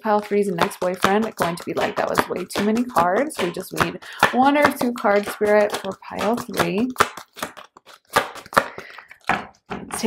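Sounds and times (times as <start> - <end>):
card rustle: 7.1 - 9.6.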